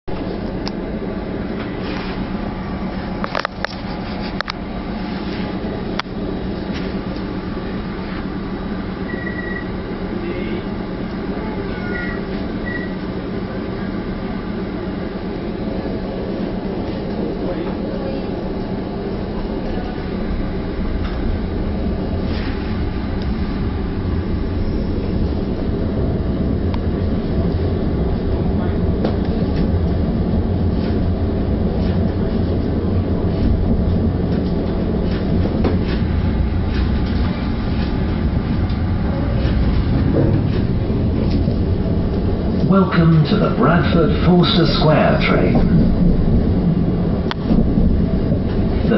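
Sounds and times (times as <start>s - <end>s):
electric train running hum: 0.1s - 48.9s.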